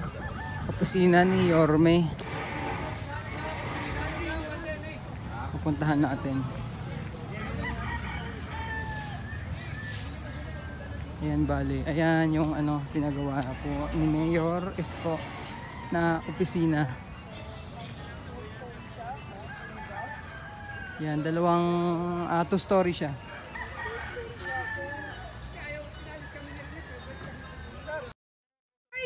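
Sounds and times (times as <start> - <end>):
rooster crowing: 7.4 - 10.7, 19.4 - 21.3, 23.4 - 25.2.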